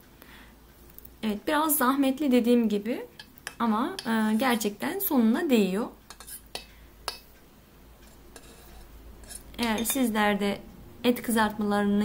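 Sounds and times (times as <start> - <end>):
metal spoon knocking pot: 9.6 - 10.1.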